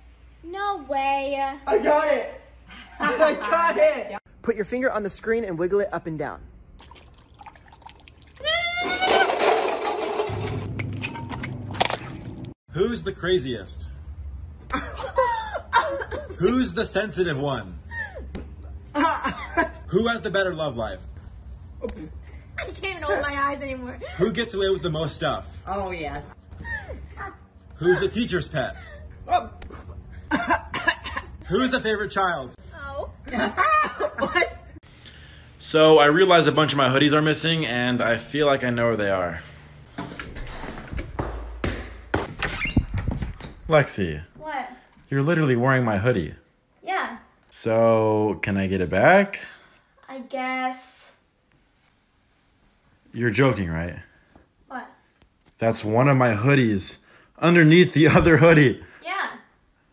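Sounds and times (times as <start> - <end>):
water splashing: 6.8 - 8.6.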